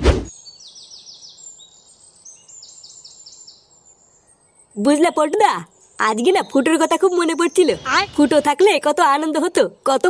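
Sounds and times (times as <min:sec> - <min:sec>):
birds chirping: 0:00.3 - 0:10.0.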